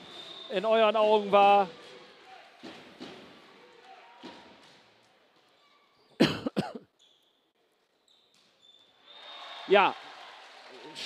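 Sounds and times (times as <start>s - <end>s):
volleyball thuds in a hall: 0.0s - 5.6s
person coughing: 6.2s - 6.9s.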